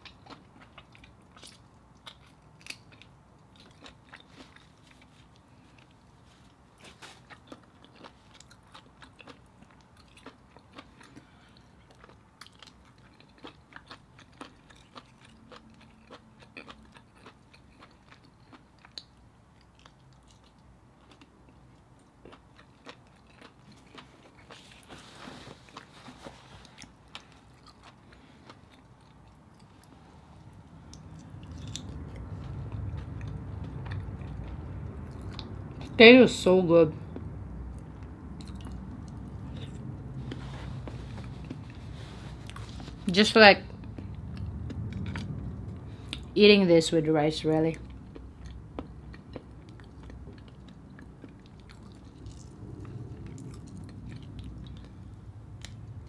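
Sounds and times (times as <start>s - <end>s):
person chewing with wet clicks: 0.0s - 36.0s, 37.0s - 43.0s, 43.7s - 46.4s, 47.6s - 56.0s.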